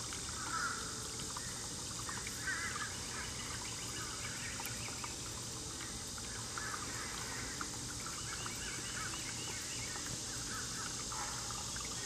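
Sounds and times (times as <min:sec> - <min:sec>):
songbirds chirping: 0:00.0 - 0:12.0
steady high hiss: 0:00.0 - 0:12.0.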